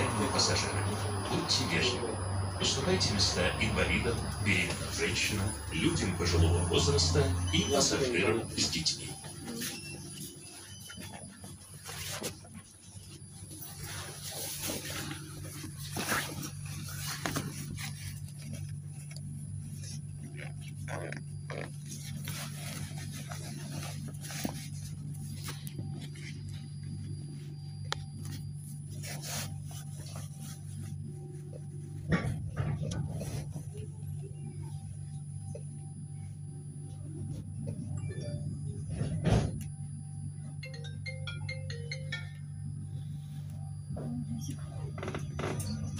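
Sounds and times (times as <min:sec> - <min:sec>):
low electrical hum: 0:00.0 - 0:45.9.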